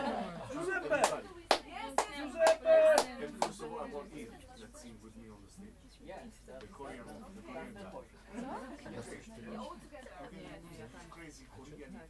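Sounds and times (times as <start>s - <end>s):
sharp claps: 1.0s - 3.6s.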